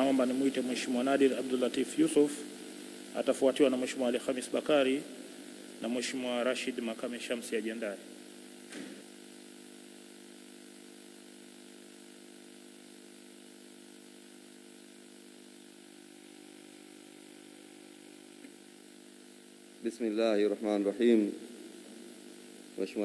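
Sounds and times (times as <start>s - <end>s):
faint buzzing hum: 0.0s - 23.0s.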